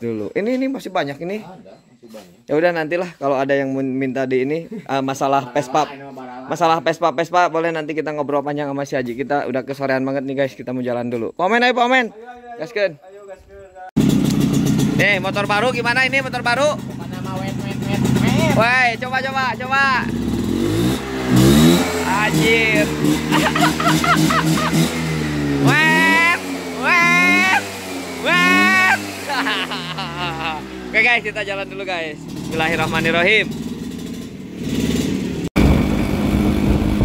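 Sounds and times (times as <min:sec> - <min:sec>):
scooter engine running: 0:14.0 - 0:37.0.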